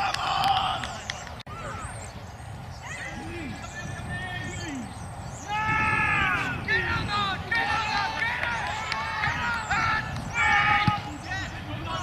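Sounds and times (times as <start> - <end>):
men shouting: 5.4 - 12.0.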